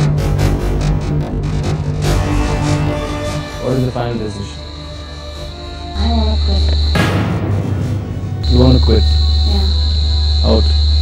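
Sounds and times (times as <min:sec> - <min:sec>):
deep music drone: 0:00.0 - 0:11.0
tense background music: 0:00.0 - 0:11.0
crickets trilling: 0:02.5 - 0:11.0.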